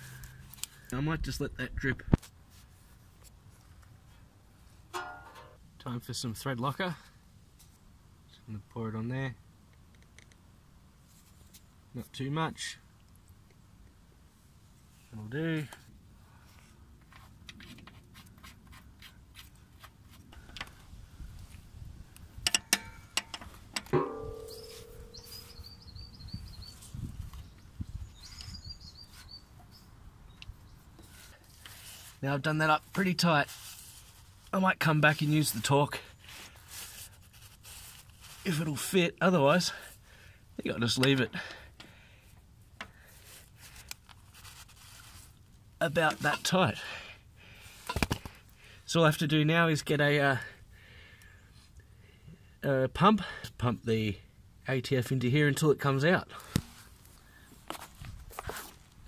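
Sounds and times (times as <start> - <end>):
short metallic ring: 5.0 - 5.6, 23.9 - 25.9
metal rubbing: 22.5 - 25.8
bird chirping: 24.0 - 31.0.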